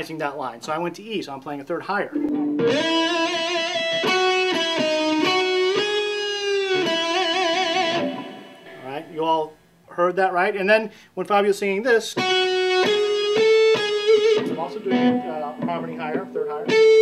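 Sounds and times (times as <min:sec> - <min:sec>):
electric guitar lead melody: 0:02.1 - 0:08.9, 0:12.2 - 0:17.0.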